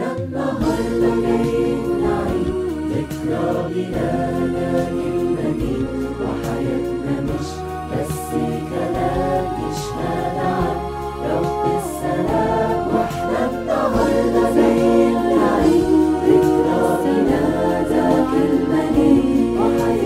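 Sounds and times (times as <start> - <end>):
choir singing a hymn: 0.0 - 20.0
instrumental backing with bass: 0.0 - 20.0.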